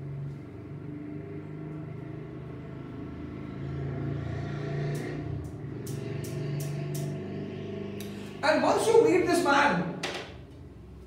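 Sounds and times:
low engine hum: 0:00.0 - 0:09.7.

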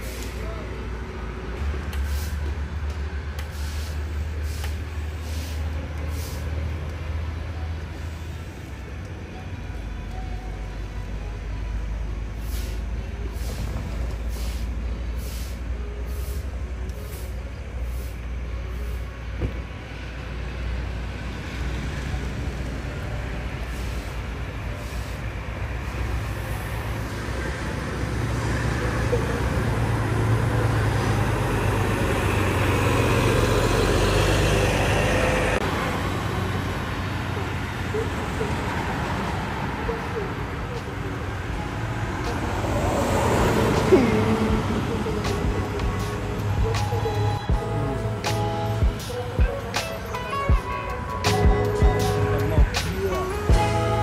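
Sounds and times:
bus diesel engine rumble: 0:00.0 - 0:54.0.

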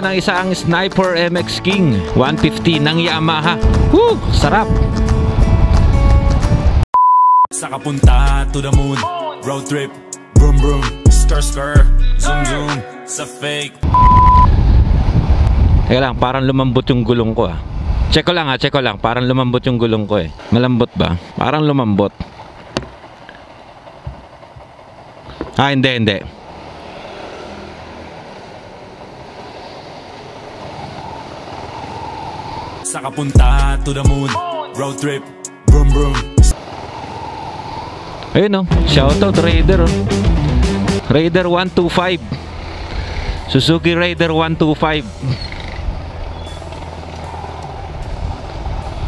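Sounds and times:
wind on microphone: 0:03.6 - 0:06.8, 0:13.8 - 0:18.2, 0:47.4 - 0:49.0
motorcycle engine running: 0:42.2 - 0:43.6, 0:45.0 - 0:49.0.

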